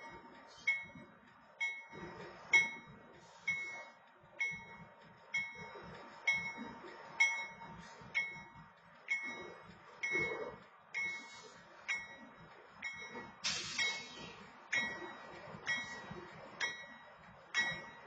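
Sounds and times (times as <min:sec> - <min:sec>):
railroad crossing bell clanging: 0:00.0 - 0:01.0, 0:01.6 - 0:18.0.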